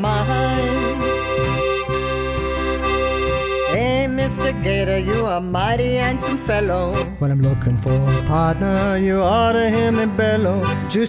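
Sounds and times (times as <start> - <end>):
accordion chord: 0.0 - 11.0
bass notes: 0.0 - 11.0.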